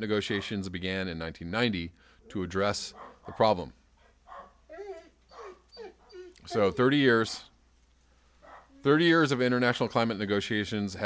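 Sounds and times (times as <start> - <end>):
dog whining: 4.3 - 7.4.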